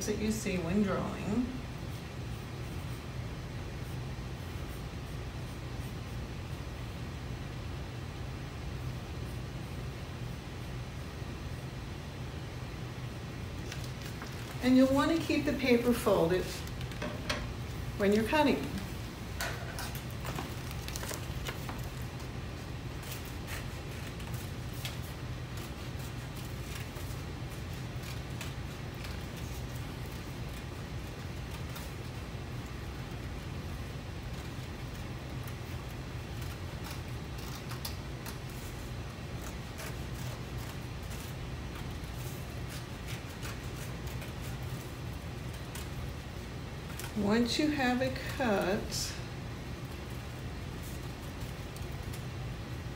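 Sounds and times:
low room hum: 0.0s - 52.9s
paper rustling: 13.6s - 14.8s, 19.6s - 47.2s, 49.8s - 52.8s
scissors snipping paper: 22.9s - 33.5s, 34.2s - 46.2s.

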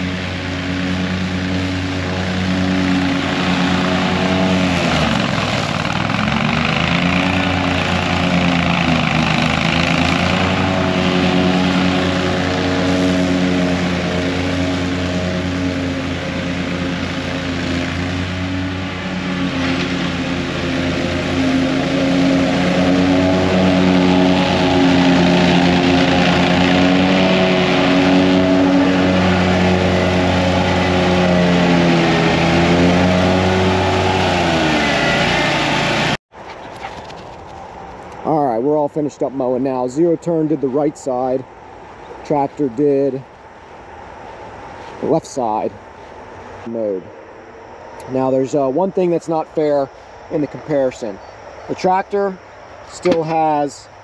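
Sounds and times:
mower engine running: 0.0s - 41.4s.

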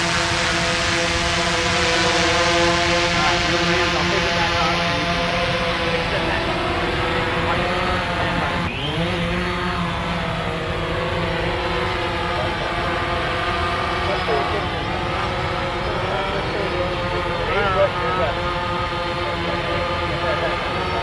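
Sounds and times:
drone rotors whining: 0.0s - 21.0s.

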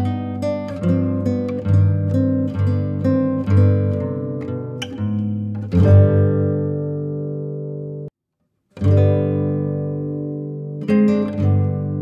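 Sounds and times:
acoustic guitar chords strummed: 0.0s - 8.1s, 8.8s - 12.0s.

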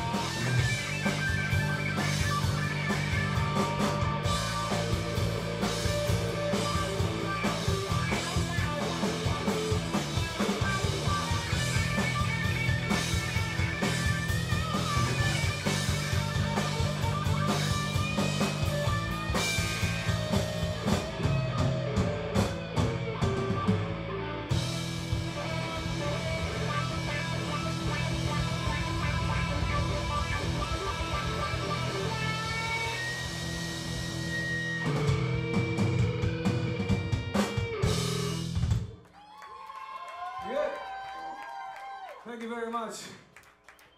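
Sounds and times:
drum kit with cymbals: 0.0s - 38.9s
bass guitar: 0.0s - 39.0s
electric guitars: 0.0s - 39.1s.

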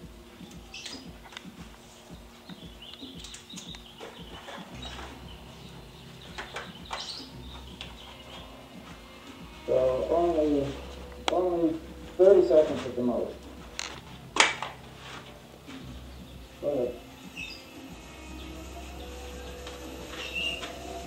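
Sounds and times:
low steady hum: 0.0s - 21.0s
man's voice: 9.7s - 13.4s.

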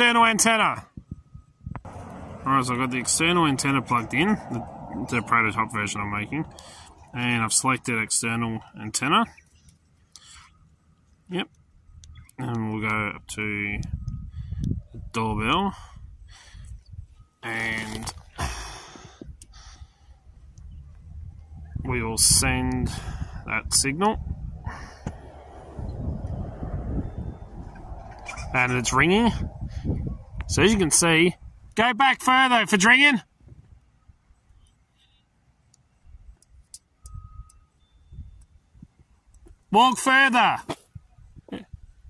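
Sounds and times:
wind rumble on microphone: 0.8s - 7.3s, 11.8s - 31.8s, 36.1s - 39.7s, 40.9s - 42.0s
faint thin tone: 37.0s - 38.6s.

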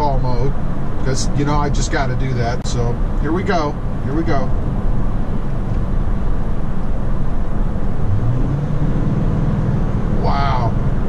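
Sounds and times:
truck engine rumble: 0.0s - 11.0s.

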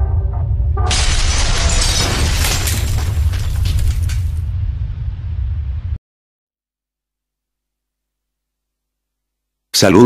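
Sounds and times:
deep rumble: 0.0s - 6.0s
stone shattering crash: 0.9s - 4.4s.

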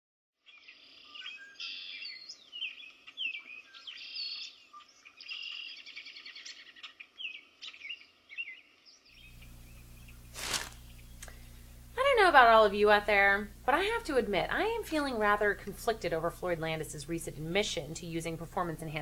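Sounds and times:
songbirds chirping and singing: 0.4s - 11.2s
low background rumble: 9.2s - 19.0s
low hum: 9.2s - 19.0s.

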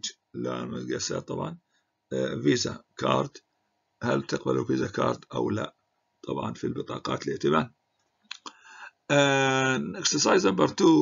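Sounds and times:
faint low noise: 0.0s - 11.0s.

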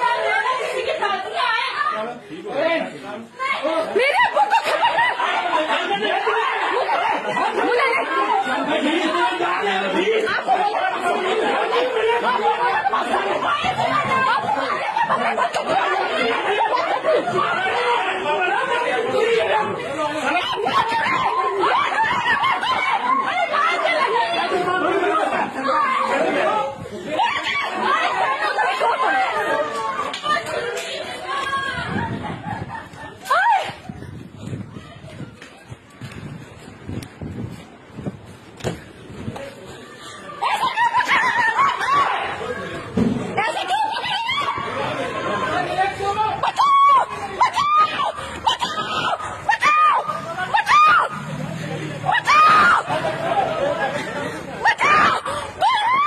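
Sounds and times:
agitated voices: 0.0s - 36.0s, 38.9s - 56.0s.

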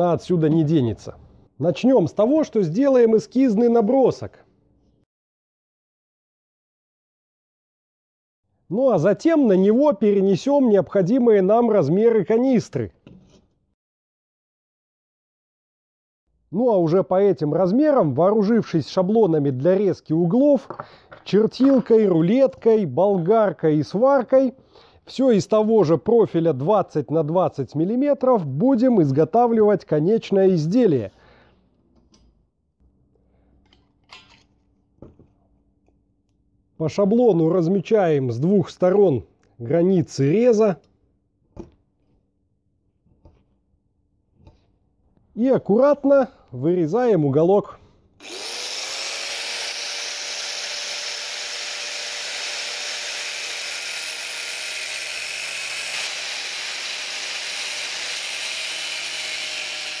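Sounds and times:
angle grinder whine: 48.2s - 60.0s.

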